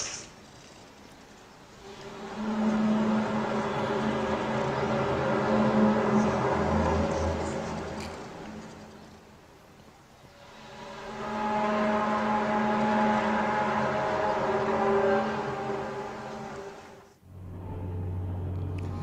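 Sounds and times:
eerie multi-tone drone: 1.6s - 19.0s.

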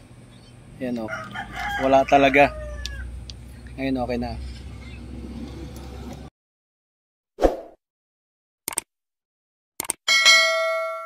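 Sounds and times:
quick clicks: 8.7s - 8.9s, 9.8s - 10.0s.

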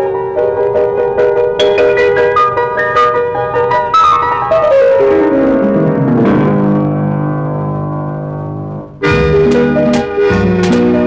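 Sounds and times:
piano playing quick run: 9.0s - 11.0s.

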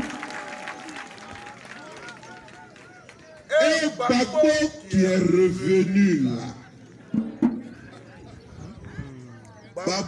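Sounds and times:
man speaking into a microphone: 3.4s - 6.7s, 9.8s - 10.0s
faint background voices: 6.3s - 10.0s.

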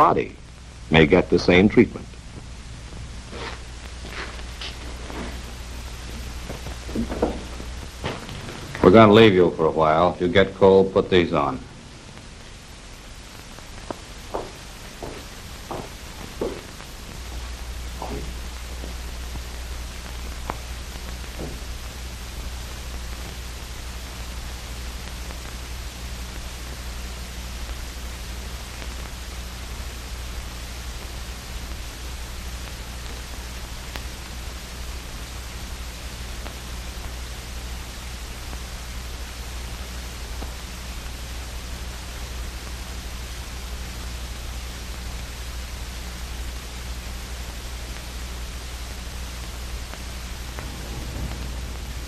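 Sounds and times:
film soundtrack hiss and hum: 0.0s - 52.0s.

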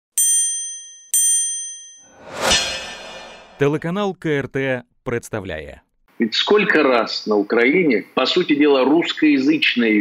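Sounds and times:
bell-like dings: 0.2s - 2.1s.

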